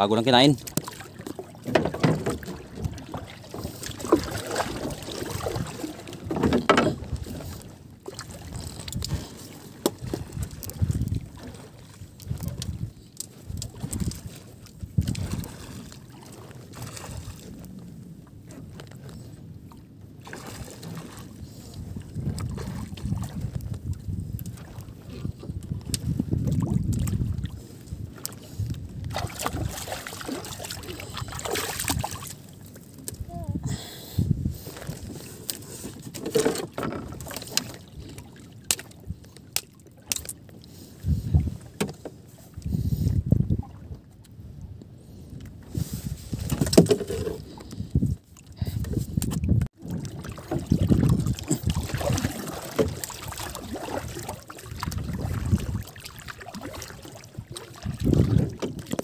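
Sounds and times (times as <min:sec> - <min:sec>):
water sloshing against boat hull: 0:00.0 - 0:33.7, 0:34.3 - 0:59.0
wind buffeting microphone: 0:08.3 - 0:15.9, 0:20.5 - 0:32.3, 0:33.1 - 0:35.4, 0:40.7 - 0:41.8, 0:42.5 - 0:59.0.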